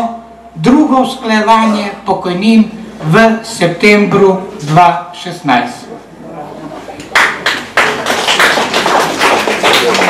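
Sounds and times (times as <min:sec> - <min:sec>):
audience applause: 0:07.1 - 0:10.0.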